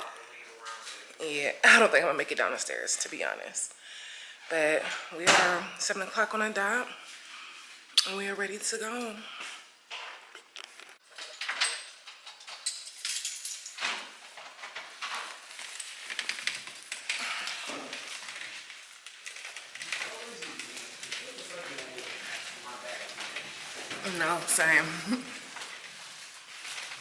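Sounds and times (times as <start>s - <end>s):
belongings clattering and rustling: 9.0s - 27.0s.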